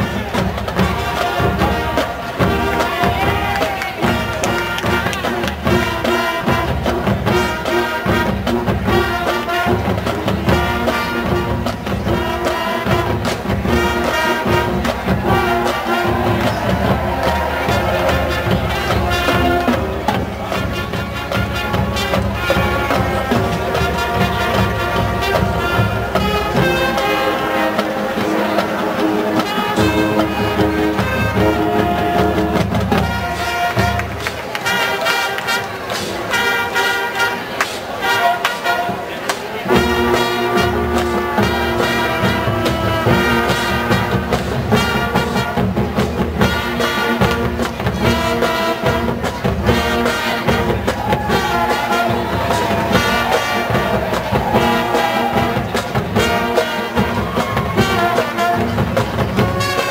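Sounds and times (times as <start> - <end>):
drumline beat: 0.0 - 59.9
marching band brass: 0.0 - 59.9.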